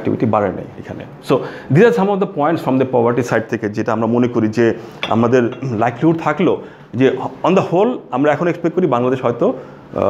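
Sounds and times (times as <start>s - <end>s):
man speaking: 0.0s - 9.5s
ceramic mug clinking on saucer: 5.0s - 6.2s.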